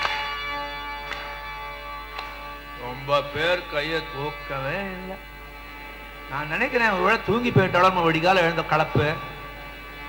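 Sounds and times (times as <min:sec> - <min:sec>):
held drone chord: 0:00.0 - 0:10.0.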